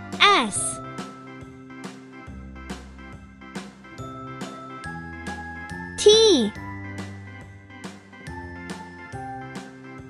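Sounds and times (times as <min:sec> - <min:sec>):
cheerful children's music: 0:00.0 - 0:10.0
child calling out: 0:00.2 - 0:00.8, 0:06.0 - 0:06.6.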